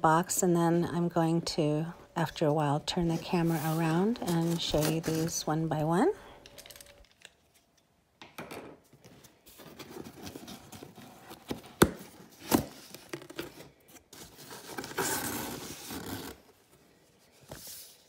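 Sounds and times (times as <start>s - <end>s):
paper rustling: 3.2s - 5.5s
packing tape tearing: 14.2s - 16.5s.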